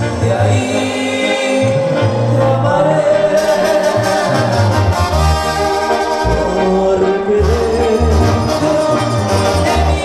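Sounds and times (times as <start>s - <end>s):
band playing live: 0.0s - 10.0s
bass line: 0.0s - 10.0s.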